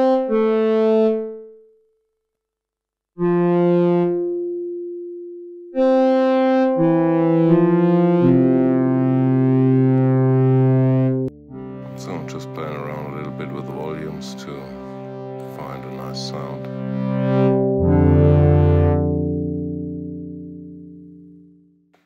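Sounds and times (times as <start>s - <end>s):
synthesizer pad chords: 0.0s - 1.7s, 3.2s - 21.7s.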